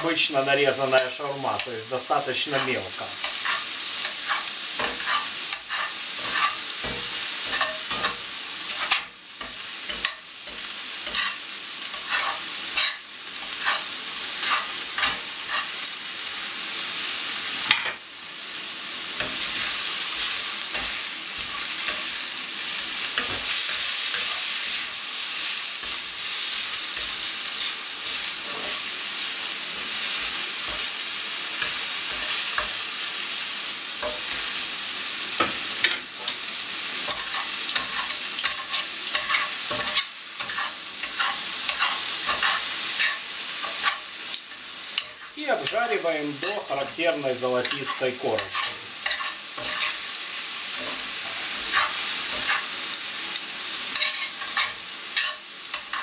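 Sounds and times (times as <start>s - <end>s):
meat sizzling in a frying pan: 0.0s - 56.0s
utensils scraping a pan: 1.0s - 15.9s, 23.1s - 24.4s, 37.0s - 44.1s, 44.9s - 53.0s, 53.9s - 56.0s.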